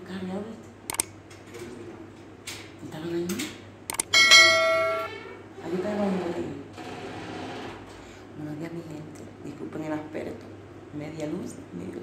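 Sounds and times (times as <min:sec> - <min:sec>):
bright bell ding: 0:04.1 - 0:05.2.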